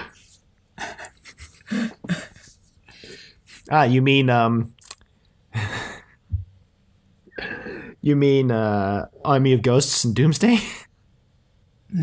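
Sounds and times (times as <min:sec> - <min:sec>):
person laughing breath: 0:00.8 - 0:03.7, 0:05.5 - 0:06.3, 0:07.3 - 0:08.0.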